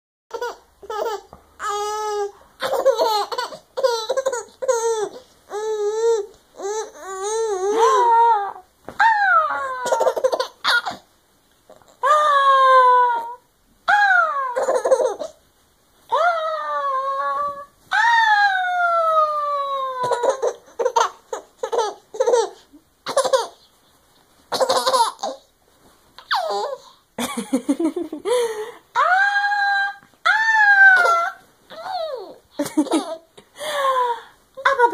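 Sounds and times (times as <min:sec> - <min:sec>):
baby giggling: 0:00.3 - 0:05.2, 0:09.5 - 0:11.0, 0:14.5 - 0:15.4, 0:19.9 - 0:23.6, 0:24.5 - 0:25.4, 0:26.2 - 0:28.2, 0:31.0 - 0:33.3.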